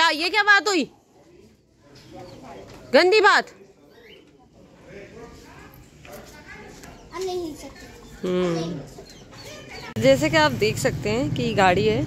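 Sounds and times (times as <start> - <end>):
chickens chirping: 6.6 - 10.1.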